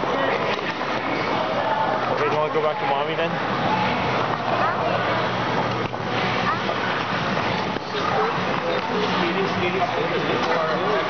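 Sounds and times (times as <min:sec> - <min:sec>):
din of indoor ice rink: 0:00.0 - 0:11.0
people's voices: 0:00.0 - 0:11.0.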